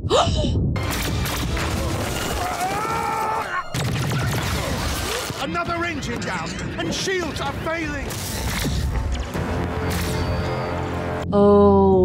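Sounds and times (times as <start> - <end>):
blaster shots and impacts: 3.7 - 5.5.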